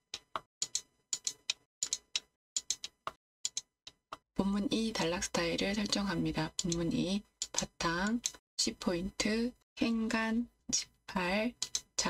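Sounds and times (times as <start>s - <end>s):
computer keyboard keystrokes: 0.0s - 4.0s, 6.6s - 6.8s, 7.4s - 8.4s, 11.6s - 11.9s.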